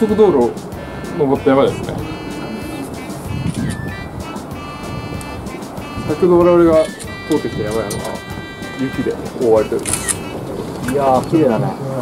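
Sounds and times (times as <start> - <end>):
background music with high notes: 0.0 - 10.7.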